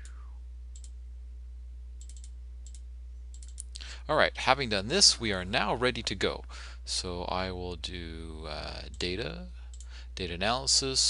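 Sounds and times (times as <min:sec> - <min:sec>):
low electrical hum: 0:00.0 - 0:11.0
computer mouse clicks: 0:00.8 - 0:01.0, 0:02.0 - 0:03.8.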